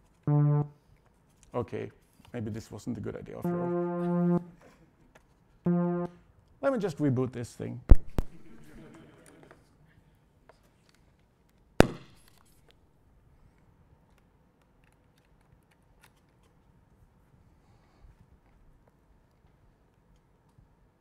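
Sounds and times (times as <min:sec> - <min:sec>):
sharp pop: 0:07.9 - 0:08.4, 0:11.8 - 0:12.3.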